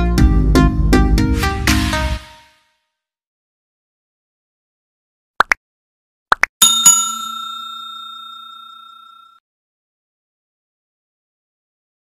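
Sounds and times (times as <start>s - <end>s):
bell ringing: 6.6s - 9.4s.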